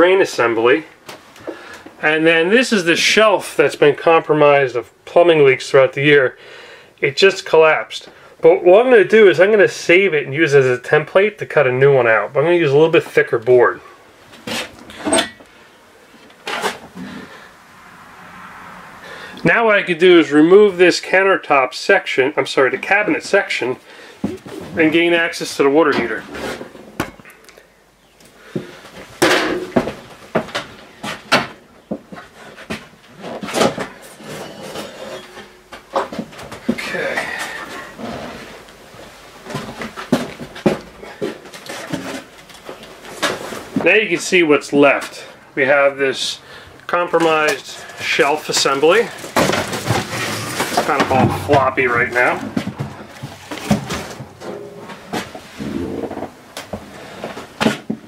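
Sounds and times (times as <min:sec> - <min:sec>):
wood scraping and creaking: 0:31.9 - 0:44.0, 0:47.1 - 0:58.0.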